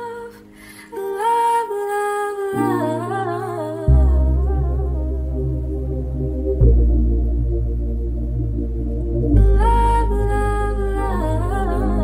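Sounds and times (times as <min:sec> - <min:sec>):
deep sustained bass: 0:03.9 - 0:12.0.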